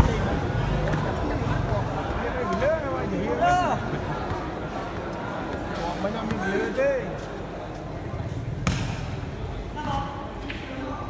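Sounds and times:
people's voices: 0.0 - 11.0
volleyball hit thud: 8.6 - 9.2.

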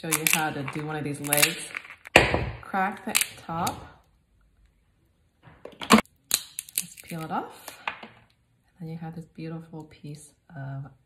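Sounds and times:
crab shell cracking: 0.0 - 2.2, 3.0 - 3.7, 5.9 - 7.4.

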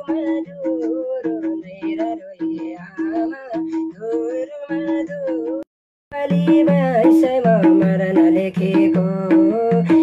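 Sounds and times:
hand drum rhythm: 0.0 - 10.0.

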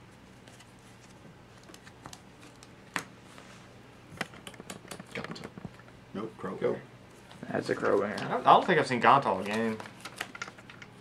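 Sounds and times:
cards clicking and rustling: 7.7 - 10.9.

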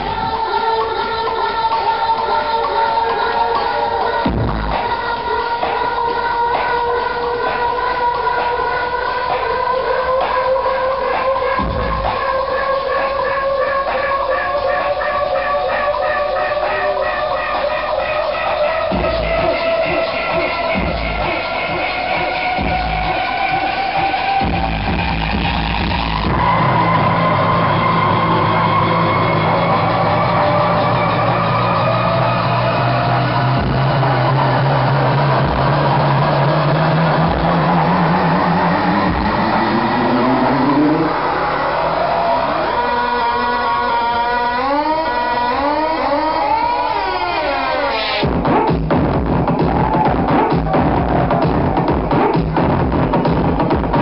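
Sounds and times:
rising pitch sweep: 1.7 - 54.0
wobbling gliding synth lines: 24.4 - 53.4
kick drum: 48.2 - 54.0.

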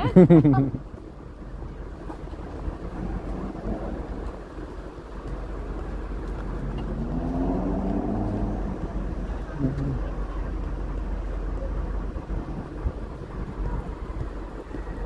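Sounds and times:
street traffic: 0.0 - 15.0
vehicle engine passing: 1.3 - 15.0.

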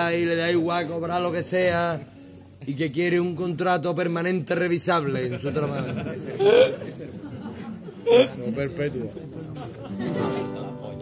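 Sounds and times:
acoustic guitar strumming: 10.0 - 11.0.

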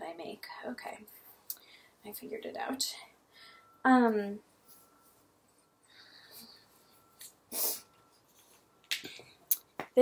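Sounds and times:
faint hiss: 7.2 - 7.9.

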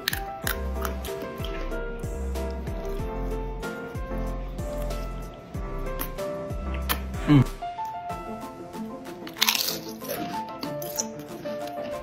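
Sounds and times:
potato chip crunch: 0.0 - 1.7, 9.2 - 12.0
background music: 0.0 - 12.0.

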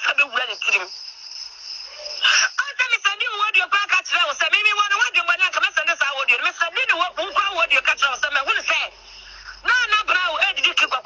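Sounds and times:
high-pitched background whine: 0.0 - 11.0.

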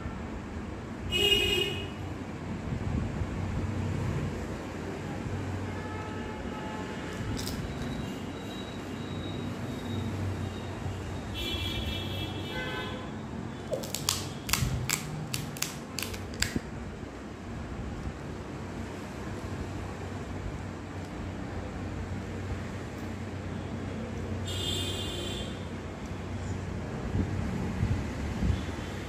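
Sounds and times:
crisp shell crunching: 7.3 - 7.9, 13.7 - 16.6.

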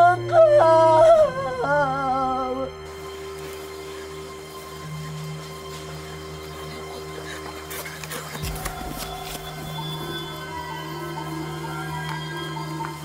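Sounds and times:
suspense drone music: 0.0 - 13.0.

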